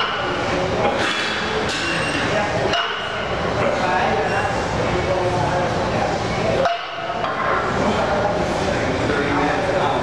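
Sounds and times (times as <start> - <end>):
busy gym din with voices: 0.0 - 10.0.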